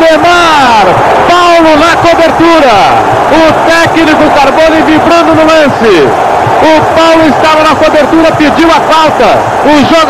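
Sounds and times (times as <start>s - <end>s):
male commentator talking quickly: 0.0s - 10.0s.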